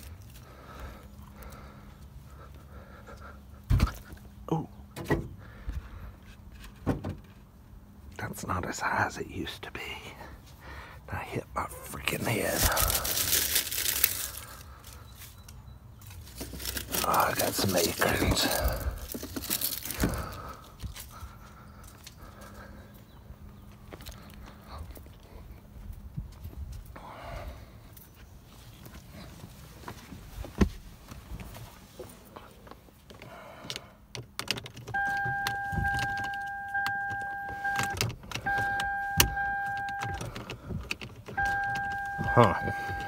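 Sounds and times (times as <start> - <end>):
electronic warning tone: 35.0 - 40.2, 41.4 - 43.0.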